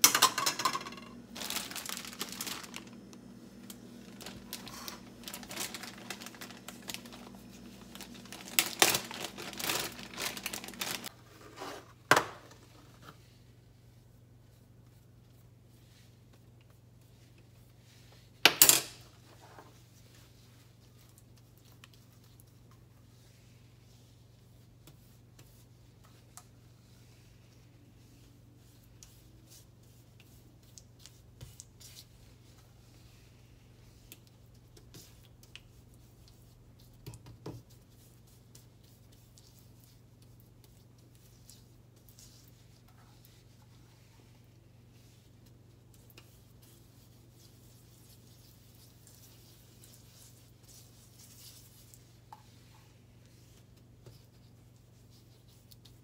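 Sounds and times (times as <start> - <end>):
steady low hum: 1.1 - 10.9
sponge scrubbing glass cooktop: 34.9 - 56.0.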